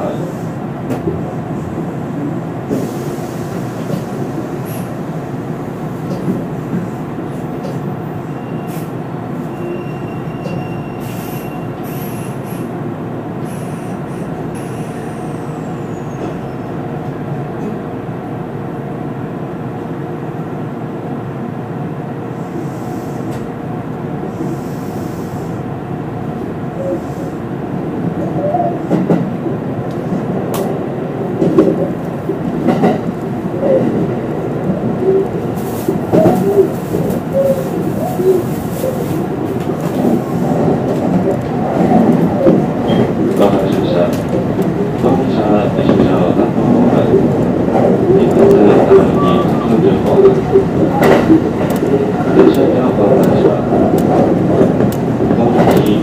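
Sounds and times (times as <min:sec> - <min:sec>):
train wheels and motors rumbling: 0:00.0 - 0:18.3, 0:22.4 - 0:56.0.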